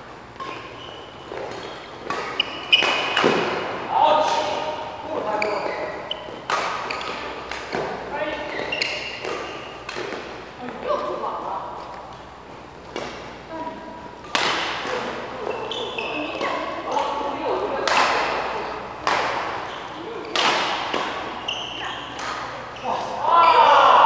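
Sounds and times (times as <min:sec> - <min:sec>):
shoes squeaking on court floor: 0:00.0 - 0:23.9
rackets hitting shuttlecock: 0:00.2 - 0:11.2, 0:11.8 - 0:23.2.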